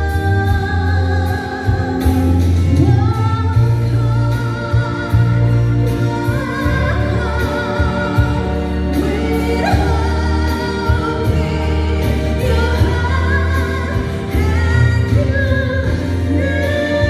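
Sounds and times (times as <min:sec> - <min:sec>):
woman singing with vibrato: 0:00.0 - 0:17.0.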